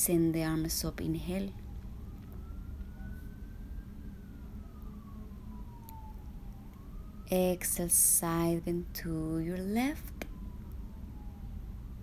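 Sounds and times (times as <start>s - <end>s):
distant siren wailing: 0.0s - 12.0s
low steady rumble: 0.0s - 12.0s.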